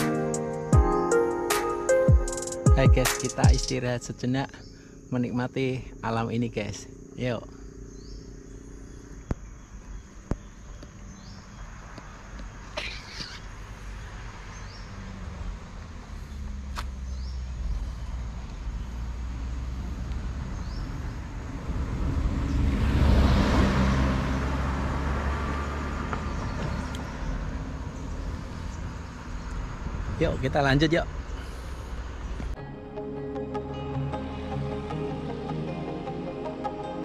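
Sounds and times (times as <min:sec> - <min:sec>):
high insect drone: 0:02.3 - 0:23.1
vehicle passing on road: 0:06.8 - 0:37.0.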